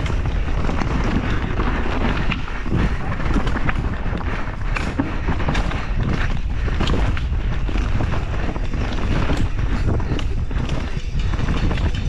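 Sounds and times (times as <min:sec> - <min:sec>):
bike clattering over rocks: 0:00.0 - 0:12.0
bike tyres rumbling on dirt: 0:00.0 - 0:12.0
wind buffeting microphone: 0:00.0 - 0:12.0.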